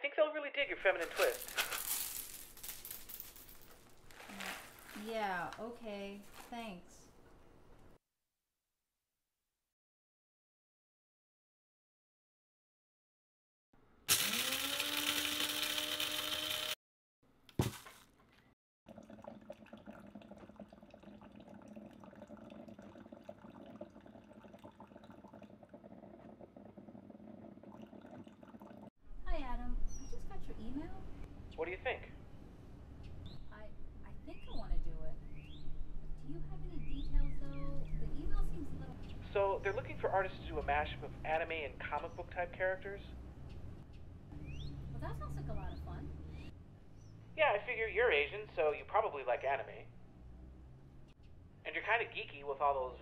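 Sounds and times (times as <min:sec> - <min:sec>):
coffee beans scattering on counter: 0:01.0 - 0:05.2, 0:14.1 - 0:16.8
electric coffee grinder running: 0:14.1 - 0:16.8.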